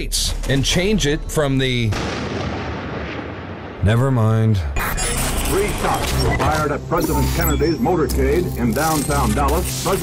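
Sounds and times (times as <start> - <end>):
gunshot with rolling echo: 1.9 - 3.9
man talking: 3.8 - 4.8, 5.5 - 10.0.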